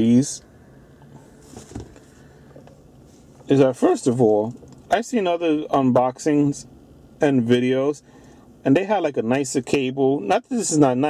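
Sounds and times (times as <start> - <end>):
car cabin low hum: 0.0 - 11.0.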